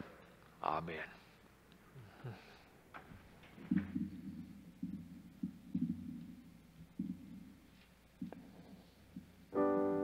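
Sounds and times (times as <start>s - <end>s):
electric keyboard playing soft notes: 9.5s - 10.0s.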